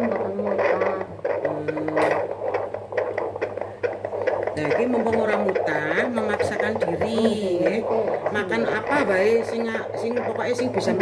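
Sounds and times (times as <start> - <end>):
fast heartbeat pulsing from speaker: 0.0 - 11.0.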